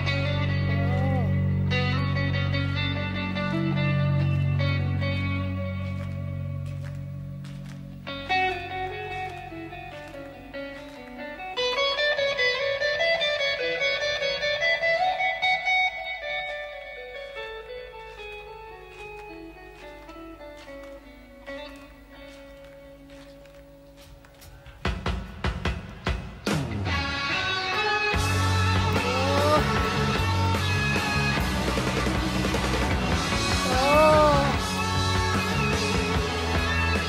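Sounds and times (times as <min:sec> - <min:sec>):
electric guitar solo: 0:00.0 - 0:23.6, 0:26.8 - 0:37.0
rock band playing: 0:24.9 - 0:37.0.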